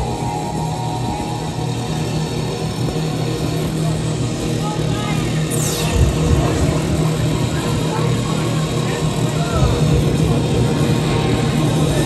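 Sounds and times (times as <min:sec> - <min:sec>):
loud electronic dance music: 0:05.5 - 0:10.6.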